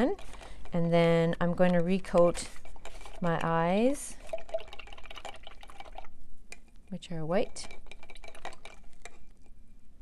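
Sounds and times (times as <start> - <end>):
paintbrush swirling in water: 2.4 - 6.1.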